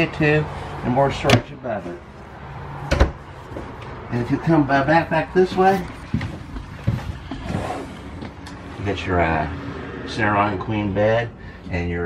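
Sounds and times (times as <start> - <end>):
cabinet door closing: 2.9 - 3.2.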